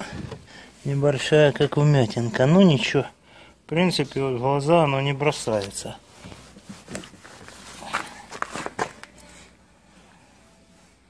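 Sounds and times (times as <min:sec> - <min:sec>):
camera handling rustles and knocks: 0:06.2 - 0:09.1.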